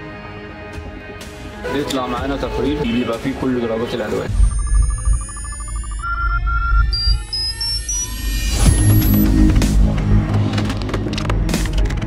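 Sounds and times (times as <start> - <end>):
short beeps: 4.3 - 9.4.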